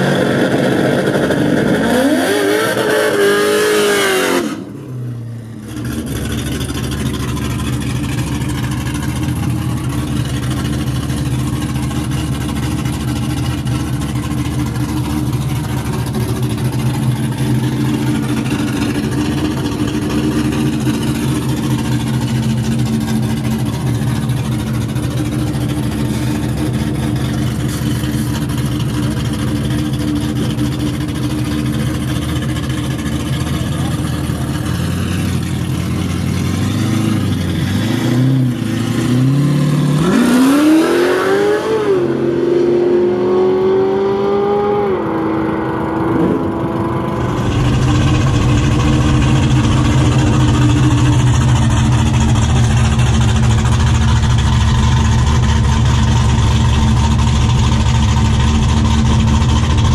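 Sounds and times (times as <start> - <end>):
car engine idling: 4.6 - 40.6, 44.8 - 59.9.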